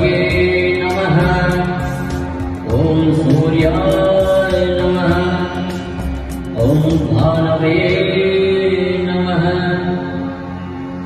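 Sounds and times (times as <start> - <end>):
voice chanting mantra: 0.0 - 10.9
devotional music accompaniment: 0.0 - 11.0.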